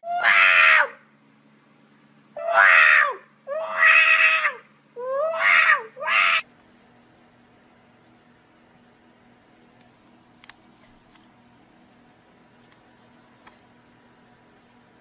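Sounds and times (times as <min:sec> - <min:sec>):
cat yowling loudly: 0:00.0 - 0:01.0, 0:02.4 - 0:06.4.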